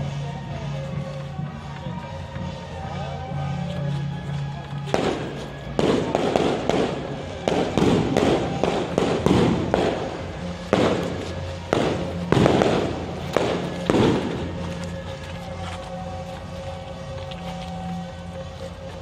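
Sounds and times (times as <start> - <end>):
firecrackers bursting: 4.2 - 19.0.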